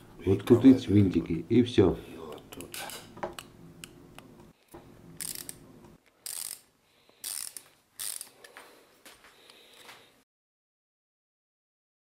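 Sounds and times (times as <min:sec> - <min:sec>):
ratchet wrench clicking: 0:05.2 - 0:05.6, 0:06.2 - 0:08.4.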